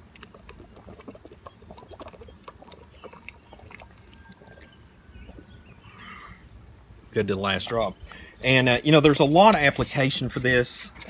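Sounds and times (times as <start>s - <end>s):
man gulping water: 0.0s - 5.8s.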